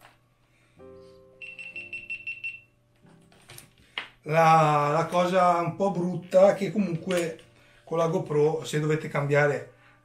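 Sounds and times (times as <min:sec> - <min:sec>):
electronic chime tune: 0:01.4 - 0:02.6
fast high beeps: 0:01.4 - 0:02.7.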